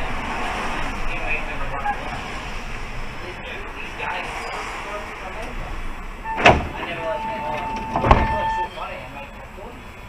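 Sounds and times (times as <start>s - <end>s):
bus running noise: 0.0s - 10.0s
brake squeal: 4.1s - 5.0s, 6.2s - 10.0s.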